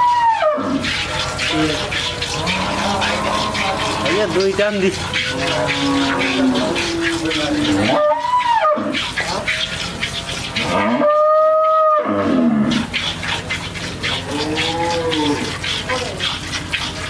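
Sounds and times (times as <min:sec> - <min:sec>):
cows mooing: 0:00.0 - 0:16.8
milk squirting into metal pail: 0:00.0 - 0:17.0.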